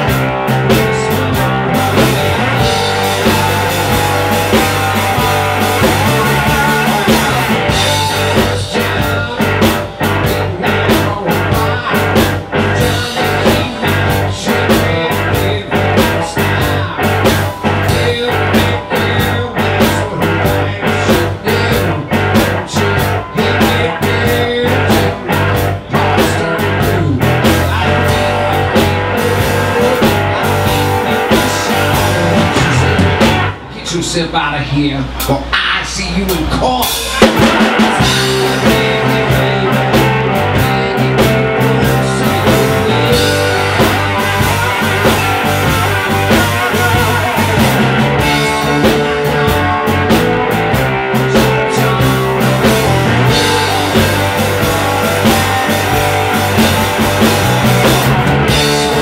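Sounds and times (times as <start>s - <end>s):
person singing into microphone: 0.0s - 33.2s, 35.6s - 49.7s, 51.1s - 59.0s
electric blues band playing: 0.0s - 59.0s.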